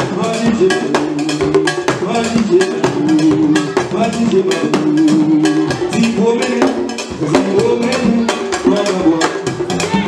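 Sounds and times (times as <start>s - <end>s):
percussion: 0.0s - 10.0s.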